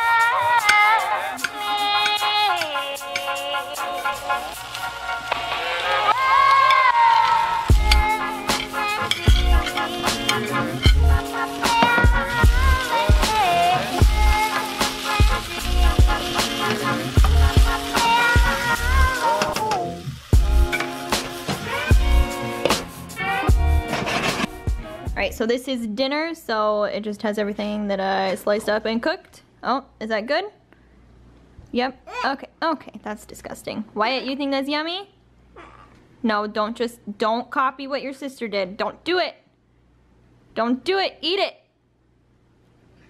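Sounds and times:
instrumental music with bass drum beat: 0:07.7 - 0:25.3.

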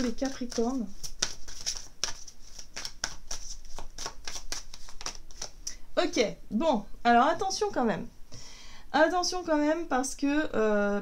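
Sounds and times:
cards being shuffled: 0:00.0 - 0:05.6.

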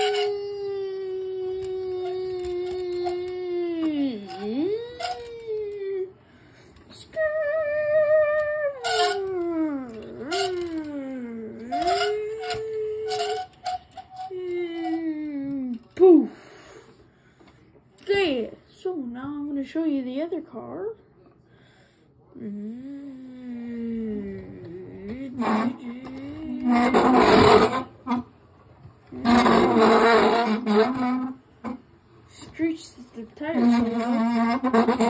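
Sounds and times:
person calling out: 0:00.0 - 0:06.2, 0:07.0 - 0:13.4
person imitating engine noises: 0:00.0 - 0:06.2, 0:07.0 - 0:13.4.

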